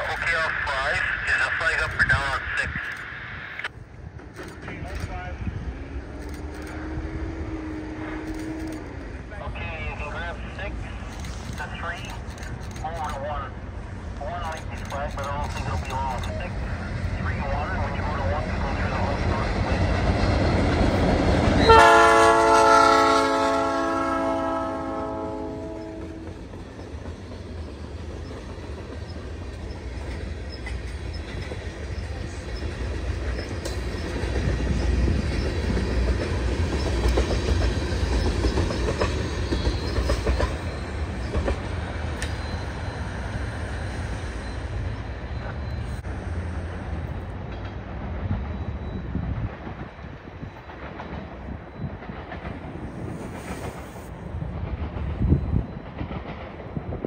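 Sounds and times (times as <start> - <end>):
diesel locomotive engine passing: 0.0 - 57.0
train cars clacking on rails: 14.3 - 43.2, 47.2 - 57.0
locomotive horn: 21.6 - 26.3.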